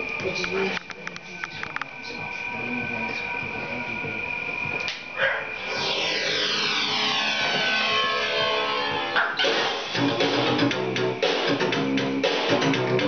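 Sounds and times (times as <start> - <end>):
falling synth sweeps: 5.5 - 10.7
electronic pop song: 5.6 - 13.0.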